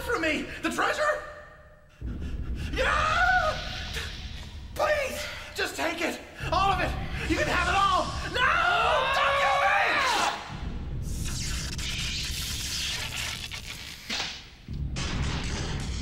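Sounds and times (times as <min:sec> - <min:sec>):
electric sparks crackling: 0:11.1 - 0:14.5.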